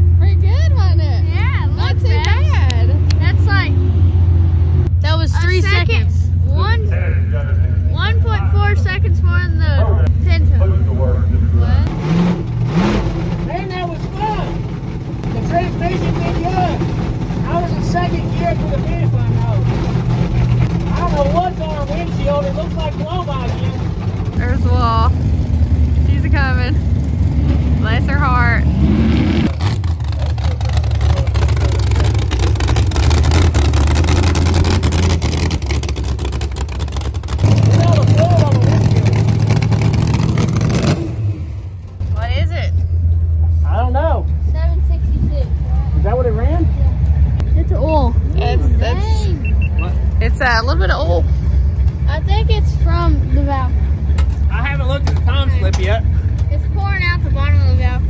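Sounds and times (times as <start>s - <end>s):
voices: 0.0s - 3.9s, 4.9s - 11.9s, 20.4s - 25.2s, 26.0s - 26.8s, 27.7s - 28.7s, 43.4s - 58.0s
car engines running: 0.0s - 58.0s
strong low engine sound: 0.0s - 58.0s.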